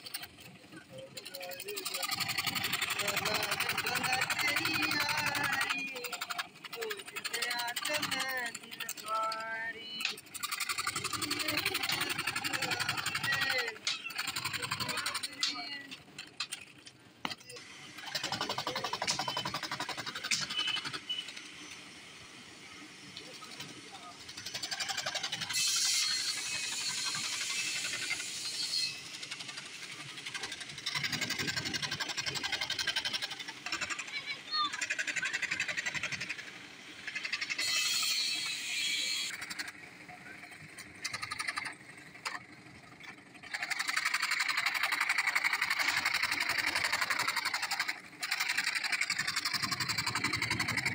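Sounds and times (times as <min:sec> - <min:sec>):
scroll saw cutting wood: 0:01.6 - 0:08.9, 0:10.1 - 0:21.5, 0:23.4 - 0:36.4, 0:37.2 - 0:39.8
saw blade cutting board: 0:25.4 - 0:29.5, 0:37.6 - 0:39.3.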